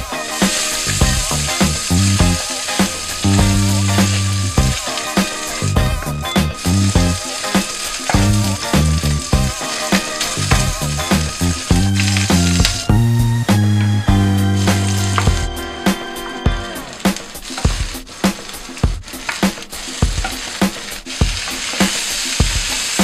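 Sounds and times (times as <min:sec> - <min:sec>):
music with rhythmic bass line: 0:00.0 - 0:18.2
food sizzling in a pan: 0:00.0 - 0:23.0.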